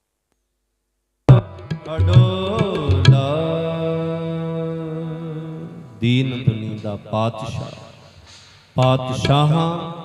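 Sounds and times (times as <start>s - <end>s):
harmonium: 1.3s - 4.2s
man singing: 1.3s - 7.9s, 8.8s - 10.0s.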